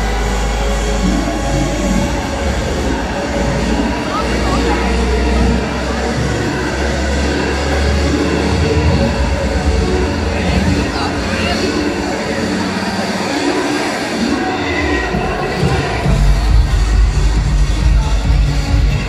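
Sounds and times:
crowd voices: 0.0 - 19.0
music: 0.0 - 19.0.

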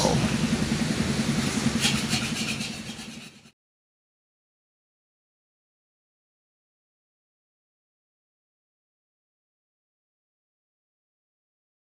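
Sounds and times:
engine idling: 0.0 - 3.5.

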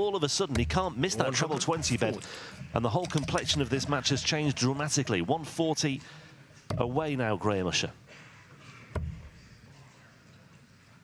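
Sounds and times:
low hall ambience: 0.0 - 11.0.

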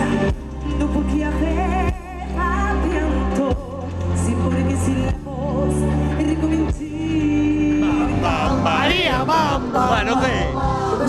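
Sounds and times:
amplified backing music with bass: 0.0 - 11.0
woman singing into a microphone: 0.0 - 11.0.

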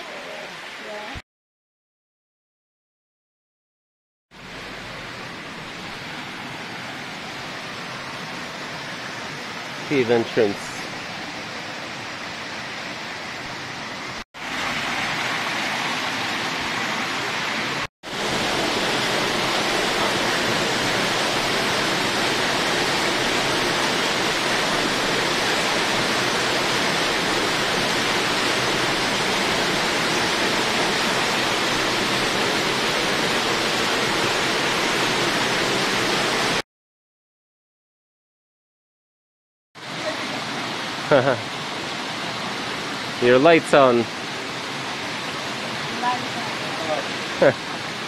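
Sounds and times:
waterfall rushing in a cave: 4.4 - 36.6, 39.8 - 48.0.

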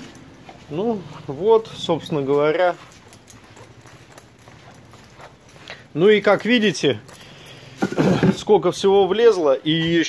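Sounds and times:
faint footsteps on concrete: 0.0 - 10.0
low background noise: 0.0 - 10.0.

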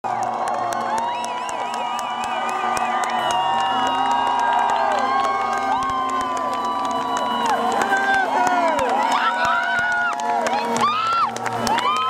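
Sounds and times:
crowd cheering and shouting: 0.0 - 12.0
hand claps: 0.0 - 12.0.

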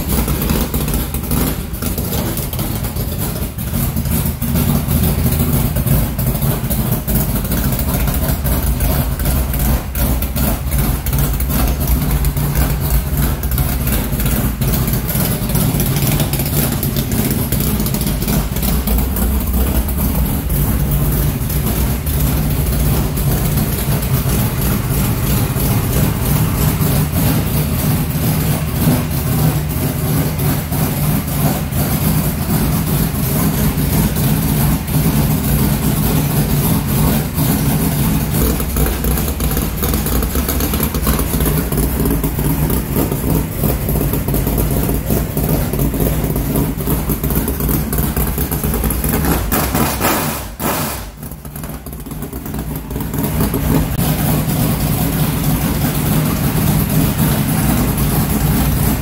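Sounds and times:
race car engine idling: 0.0 - 59.0.

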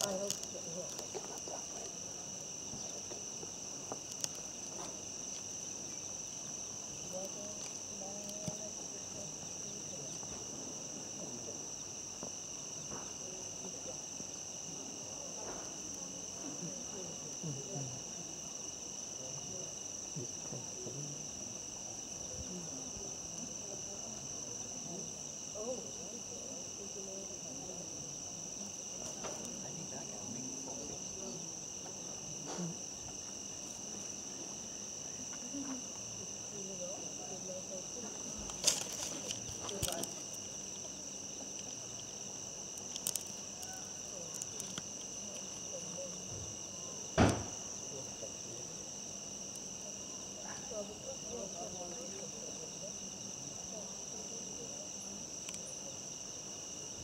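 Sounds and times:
night insects chorus: 0.0 - 57.0.

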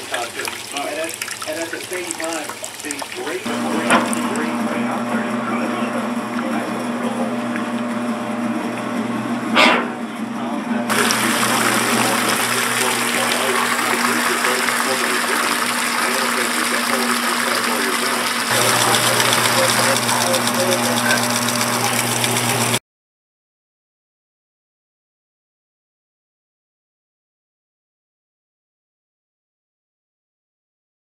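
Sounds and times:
water rushing into a tub: 0.0 - 8.5, 10.9 - 22.8
washing machine motor hum: 0.0 - 22.8.

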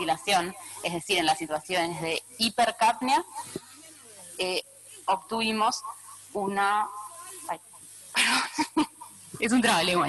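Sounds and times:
woman's voice: 0.0 - 3.5, 4.4 - 7.0, 8.2 - 10.0.

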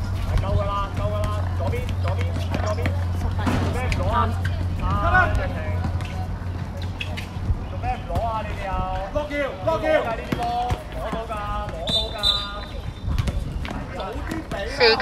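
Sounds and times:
people calling and shouting: 0.0 - 15.0
basketball bouncing: 0.2 - 6.8, 12.8 - 13.8.

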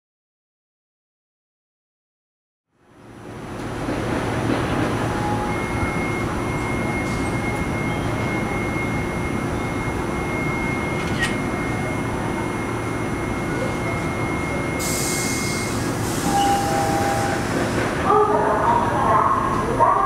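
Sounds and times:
tram hum and rumble: 2.7 - 20.0.

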